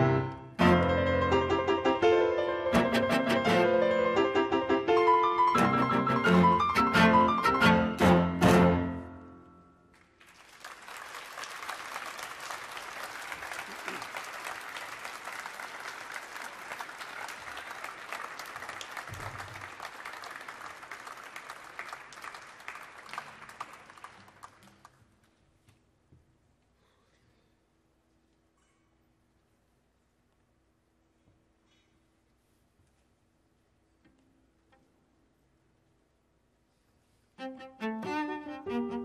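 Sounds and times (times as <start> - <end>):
cello and piano chord: 0.0 - 9.4, 37.4 - 39.0
audience applause: 10.0 - 25.0.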